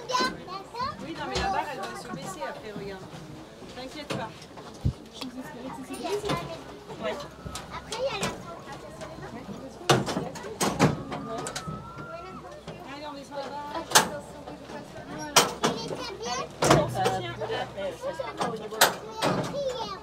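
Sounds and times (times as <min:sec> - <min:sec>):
people talking: 0:00.0 - 0:20.0.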